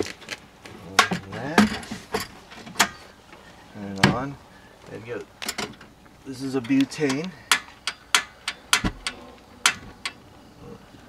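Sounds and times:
metallic clicks and knocks: 6.6s - 10.2s.

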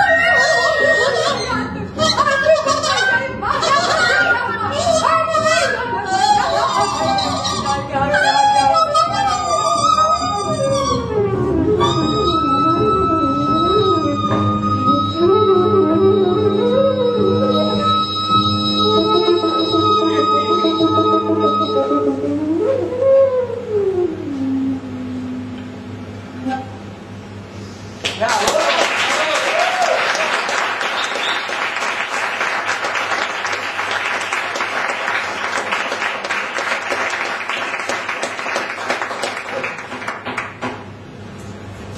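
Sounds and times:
high flute-like tone: 0.0s - 25.6s, 26.4s - 26.9s
double bass sliding: 0.0s - 27.9s.

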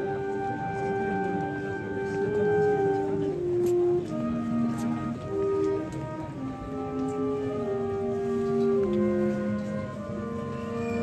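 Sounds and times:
band playing slow march: 0.0s - 11.0s.

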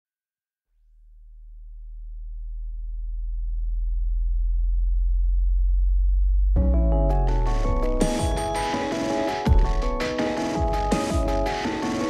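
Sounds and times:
deep synthesized bass drone: 0.8s - 8.6s, 9.5s - 11.5s.

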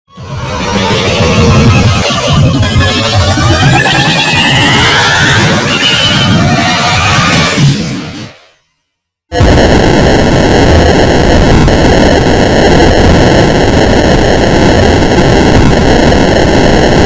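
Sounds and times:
harsh distorted noise: 0.1s - 8.6s, 9.3s - 17.0s.

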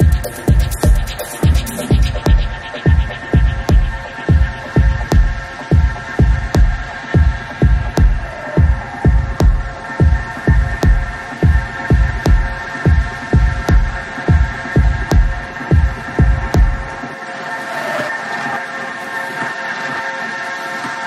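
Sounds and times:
techno kick drum: 0.0s - 17.0s.

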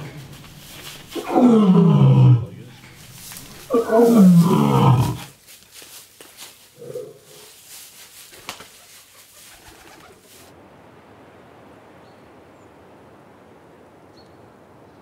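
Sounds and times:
straw rustling underfoot: 0.0s - 10.5s
outdoor background: 0.0s - 15.0s
wings fluttering: 7.9s - 10.5s.

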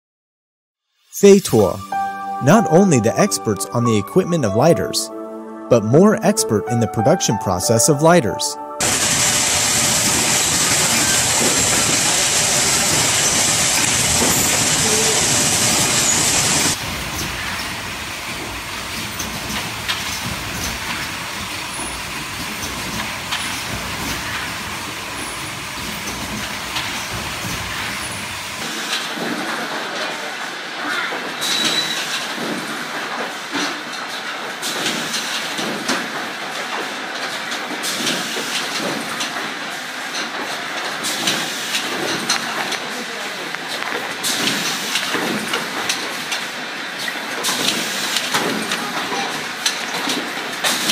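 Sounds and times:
music: 1.2s - 9.4s.

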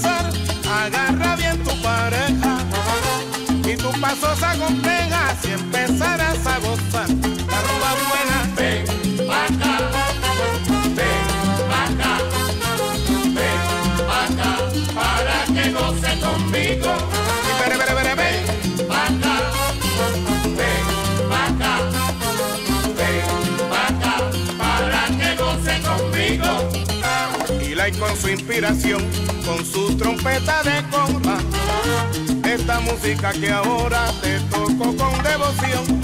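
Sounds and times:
instrumental salsa music: 0.0s - 36.0s.

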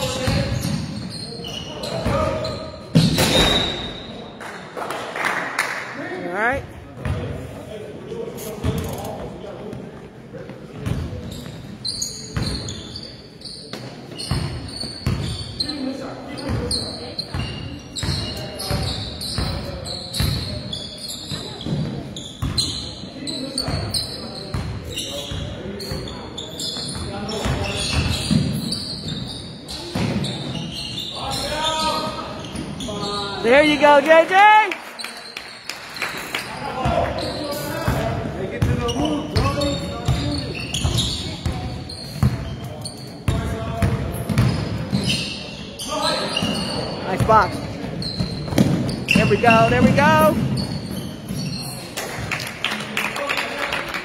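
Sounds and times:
basketball bouncing on court: 7.0s - 7.2s, 10.7s - 11.3s, 13.8s - 15.4s, 21.4s - 22.7s, 26.9s - 29.2s, 37.9s - 42.6s, 43.3s - 45.1s, 46.4s - 51.5s
spectators chatting: 36.0s - 54.0s.

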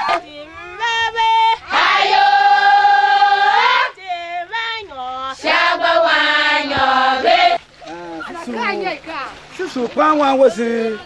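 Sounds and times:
women singing a chant: 0.0s - 7.7s.

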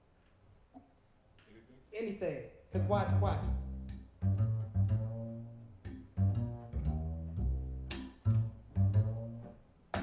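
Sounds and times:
double bass plucked jazz run: 2.8s - 10.0s.

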